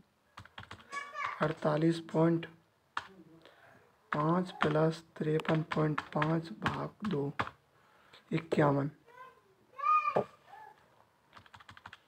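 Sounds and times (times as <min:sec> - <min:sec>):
calculator keys clicking: 0:00.4 - 0:00.9, 0:11.4 - 0:12.0.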